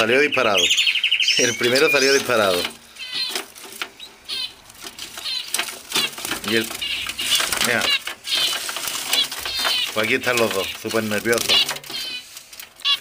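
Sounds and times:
finches chirping: 0.0 - 13.0
rustling of hay: 1.5 - 13.0.

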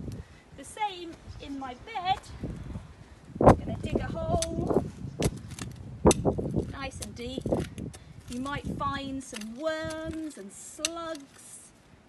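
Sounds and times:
trowel scraping stony soil: 4.2 - 11.7.

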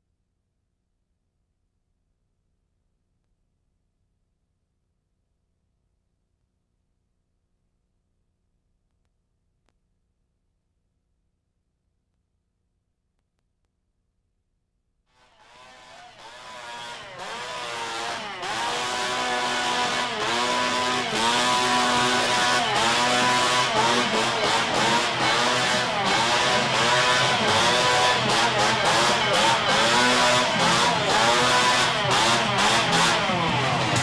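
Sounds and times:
chainsaw engine revving: 15.2 - 34.0.

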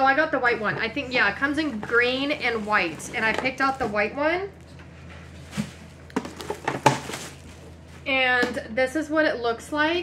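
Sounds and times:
plastic box rustling and clicking: 6.1 - 7.4.

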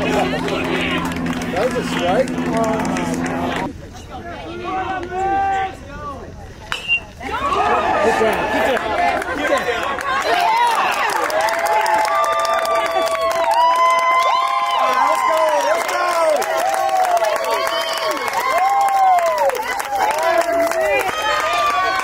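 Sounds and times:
crowd cheering and yelling: 0.0 - 3.7, 7.2 - 22.0
crowd voices and shouts: 0.0 - 22.0.

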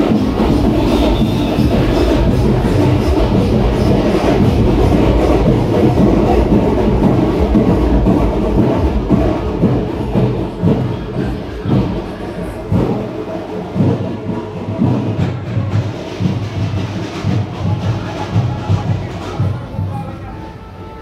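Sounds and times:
procession music with heavy drumming: 0.0 - 21.0.

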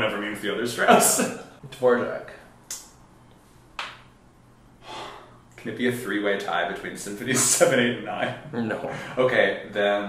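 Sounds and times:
person breathing: 4.8 - 5.4.

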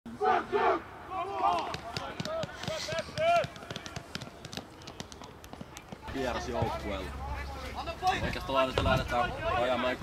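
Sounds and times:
team shouting together: 0.2 - 1.9.

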